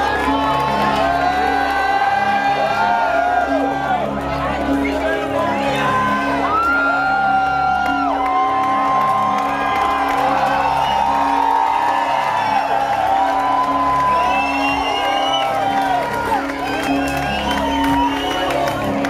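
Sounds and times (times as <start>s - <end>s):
crowd cheering and whooping: 0.0s - 4.2s, 5.5s - 19.0s.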